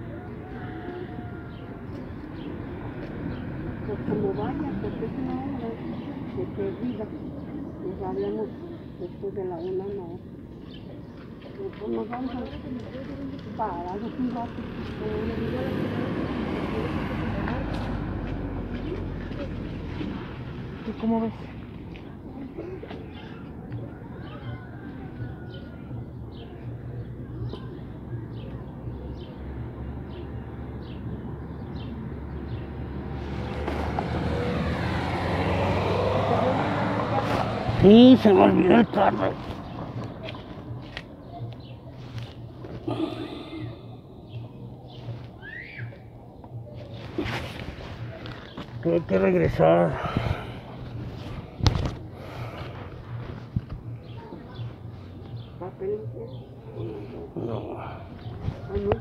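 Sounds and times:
low traffic hum: 0:00.0 - 0:59.0
vehicle approaching: 0:00.0 - 0:59.0.

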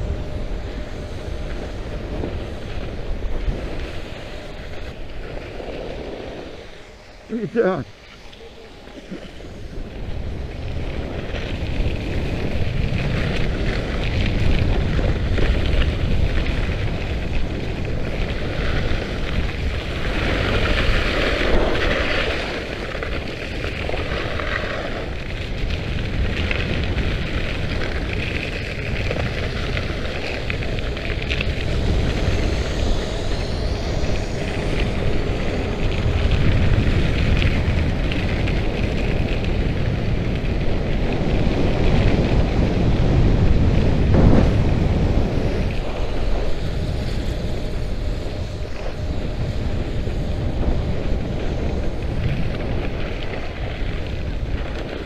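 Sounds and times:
wind buffeting microphone: 0:00.0 - 0:55.0
skis scraping icy snow: 0:00.5 - 0:55.0.

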